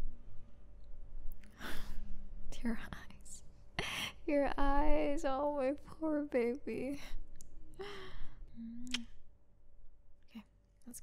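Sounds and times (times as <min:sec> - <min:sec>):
woman whispering softly: 0:01.5 - 0:03.4, 0:10.3 - 0:11.0.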